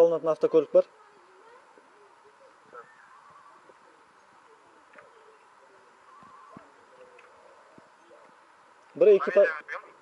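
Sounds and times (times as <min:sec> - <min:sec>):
distant voices: 0:00.6 - 0:10.0.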